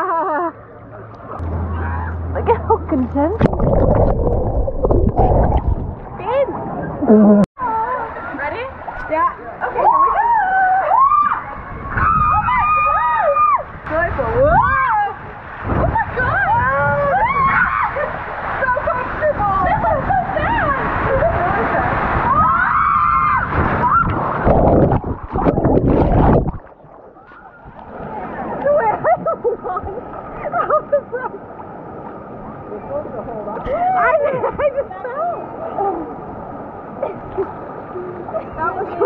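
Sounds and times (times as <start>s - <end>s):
pool water sloshing: 0.0s - 39.0s
muffled underwater wash: 0.6s - 39.0s
tube splashing down: 3.4s - 6.4s, 23.1s - 28.8s
water rushing on slide: 3.4s - 7.0s, 9.6s - 31.4s
riders shrieking and whooping: 9.8s - 13.7s, 16.2s - 18.2s, 22.2s - 24.4s
people laughing: 28.6s - 31.5s, 33.7s - 35.4s.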